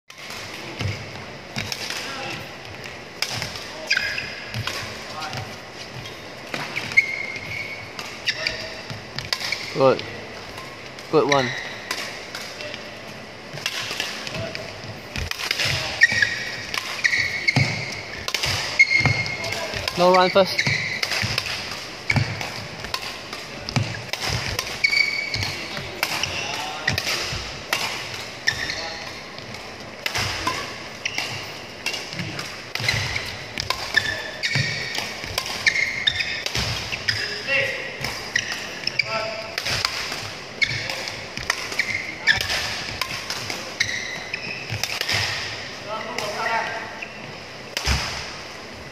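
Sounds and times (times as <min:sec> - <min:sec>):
shoes squeaking on court: 0:00.2 - 0:11.9, 0:13.2 - 0:47.7
rackets striking shuttlecocks: 0:13.4 - 0:28.6, 0:29.4 - 0:37.3, 0:38.0 - 0:45.6
racket striking shuttlecock: 0:30.0 - 0:37.2.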